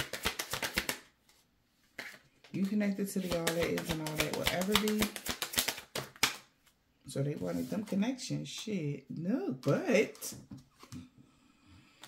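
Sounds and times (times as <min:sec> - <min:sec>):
cards being shuffled: 0:00.0 - 0:01.4, 0:02.0 - 0:06.8.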